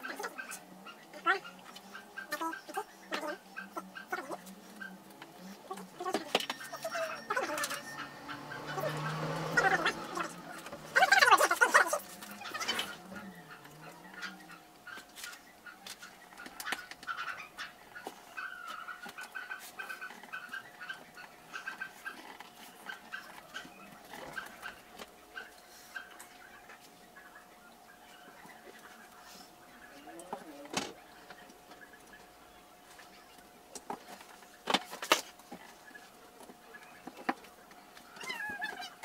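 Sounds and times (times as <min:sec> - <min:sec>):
faint steady hum: 0:00.0 - 0:39.0.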